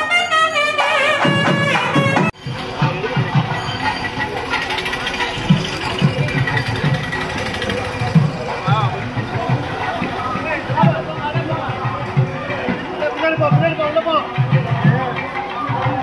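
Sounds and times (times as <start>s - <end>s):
crowd talking and calling out: 0.0s - 16.0s
music with low beat: 0.6s - 16.0s.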